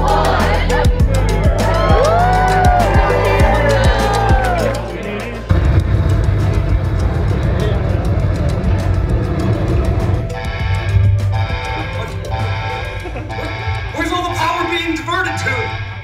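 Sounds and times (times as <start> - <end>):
music with low beat: 0.0 - 16.0
rocket launch rumble: 5.4 - 12.4.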